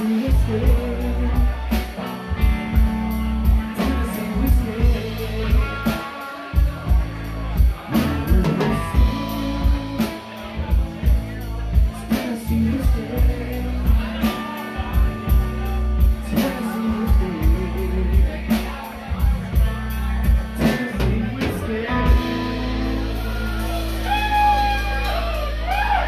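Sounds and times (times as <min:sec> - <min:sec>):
man singing: 0:00.0 - 0:25.0
drum kit beat: 0:00.0 - 0:26.0
electric guitar: 0:00.0 - 0:26.0.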